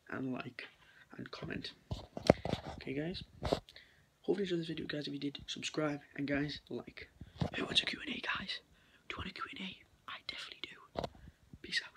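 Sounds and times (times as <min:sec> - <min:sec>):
boy whispering: 0:07.5 - 0:11.9.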